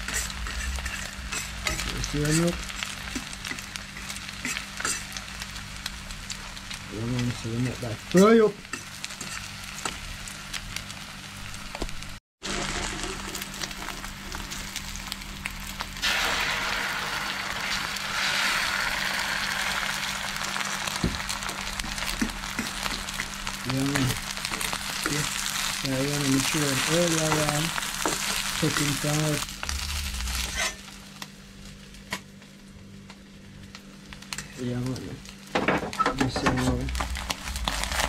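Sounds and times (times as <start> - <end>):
eggs sizzling in a pan: 0.0 - 36.0, 36.6 - 38.0.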